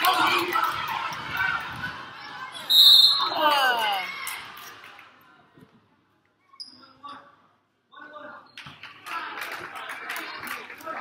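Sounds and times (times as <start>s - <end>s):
referee's whistle blowing: 2.6s - 3.4s.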